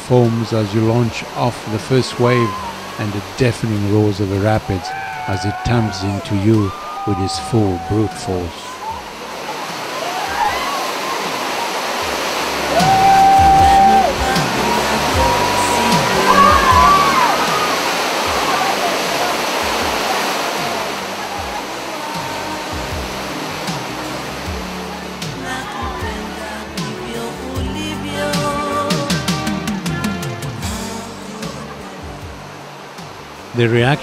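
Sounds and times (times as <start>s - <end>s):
whitewater rapid roaring: 0.0s - 34.0s
long held pitched note: 12.4s - 17.9s.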